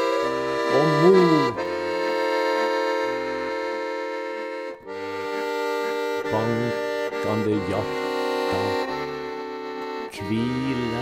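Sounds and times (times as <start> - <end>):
button accordion chords: 0.0 - 11.0
person singing: 0.6 - 1.7, 6.3 - 11.0.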